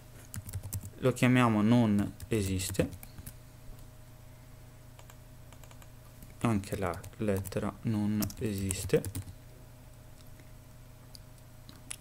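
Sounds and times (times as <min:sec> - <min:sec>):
faint steady hum: 0:00.0 - 0:12.0
faint keyboard typing: 0:00.2 - 0:01.0, 0:01.9 - 0:03.9, 0:05.0 - 0:09.4.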